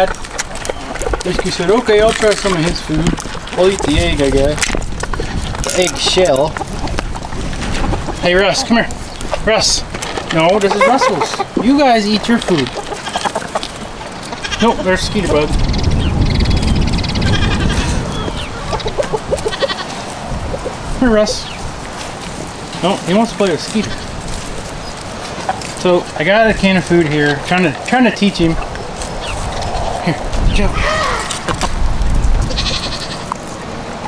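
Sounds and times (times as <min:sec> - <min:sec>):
goats bleating: 0:10.6 - 0:15.5, 0:17.2 - 0:20.1, 0:23.4 - 0:24.3, 0:32.4 - 0:33.4
steady low rumble: 0:26.1 - 0:32.9.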